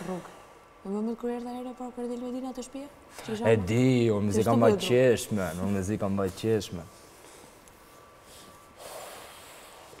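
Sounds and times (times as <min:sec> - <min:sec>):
person breathing: 0:08.2 - 0:10.0.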